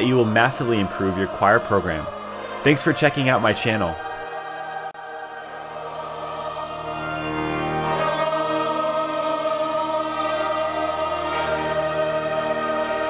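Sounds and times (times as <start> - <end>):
choir singing sustained chords: 0.0 - 13.0.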